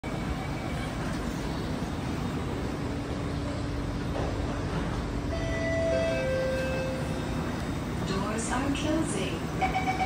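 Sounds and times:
train rumbling at platform: 0.0s - 10.0s.

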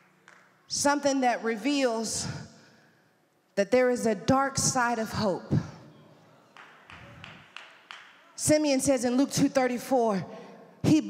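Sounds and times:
hand claps with echo: 0.0s - 0.6s, 6.5s - 8.4s.

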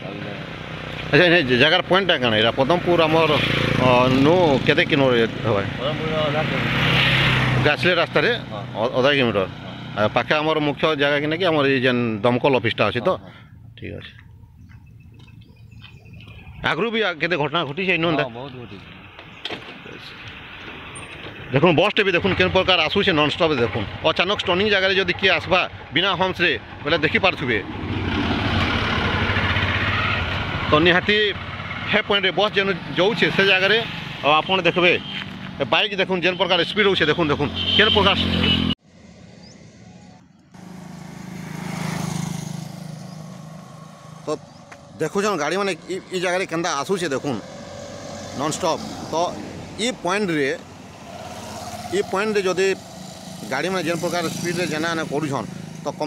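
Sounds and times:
tyre and road noise: 0.0s - 56.0s
motorcycle engine passing: 0.1s - 12.0s, 20.4s - 35.8s, 40.6s - 56.0s.

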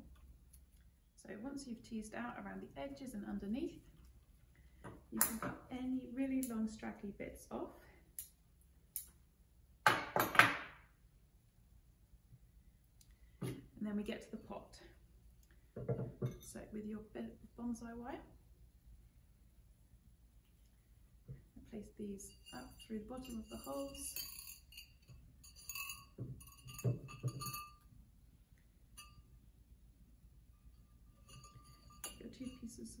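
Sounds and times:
ceramic pot clinking: 22.2s - 27.9s, 28.9s - 29.4s, 30.4s - 33.0s
pot knocking on wooden board: 26.2s - 27.6s.

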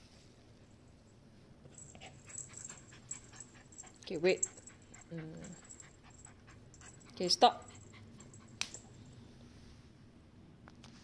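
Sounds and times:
dog panting: 1.8s - 8.9s.

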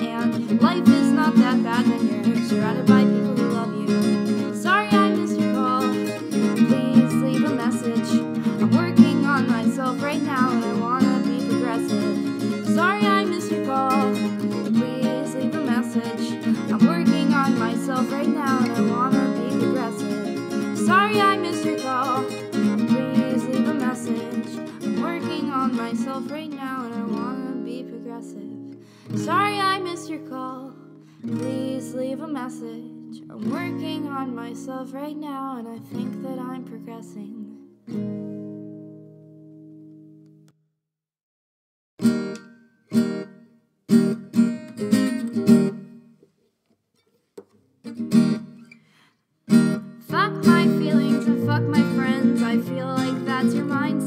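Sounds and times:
acoustic guitar strumming: 0.0s - 34.8s, 42.0s - 46.2s, 47.4s - 48.9s, 49.5s - 54.0s.

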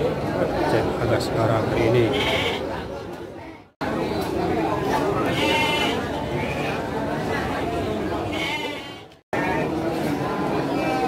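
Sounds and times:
crowd talking: 0.0s - 11.0s
sheep bleating: 2.1s - 2.6s, 5.2s - 6.0s, 8.3s - 9.5s.

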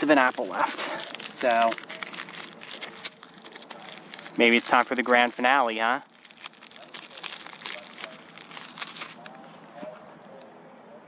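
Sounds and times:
plastic wrapper crinkling: 0.0s - 9.9s.

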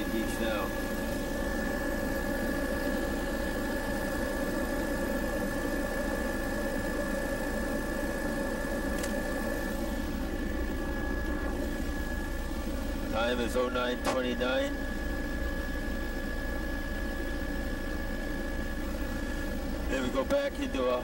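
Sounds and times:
aircraft engine drone: 0.0s - 21.0s
high whine: 0.0s - 21.0s.

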